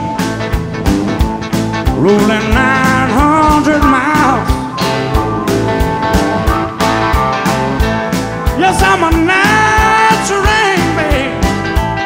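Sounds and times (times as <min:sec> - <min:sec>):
drums and bass: 0:00.0 - 0:12.0
electric guitar lead: 0:00.0 - 0:12.0.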